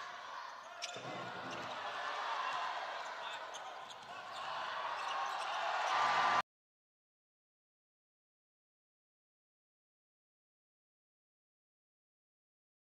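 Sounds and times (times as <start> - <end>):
murmur of spectators: 0.0 - 6.4.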